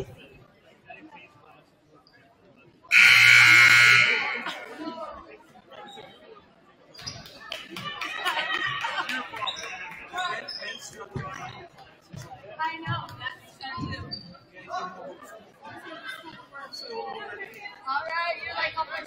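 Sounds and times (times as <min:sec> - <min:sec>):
crowd chatter: 0:00.0 - 0:19.0
scoreboard buzzer: 0:02.9 - 0:04.6.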